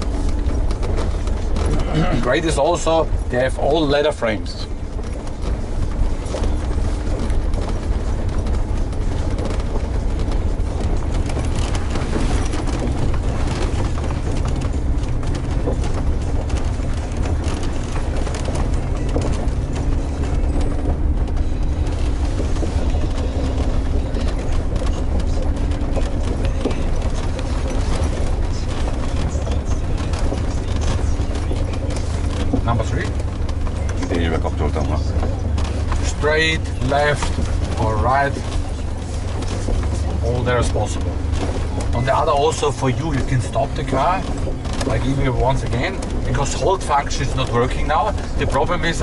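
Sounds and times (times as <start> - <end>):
engine rumble inside cabin: 0.0 - 49.0.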